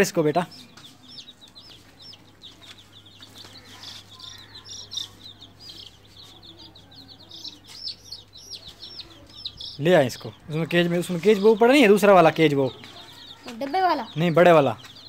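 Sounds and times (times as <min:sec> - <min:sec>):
baby chicks peeping: 0:00.0 - 0:15.0.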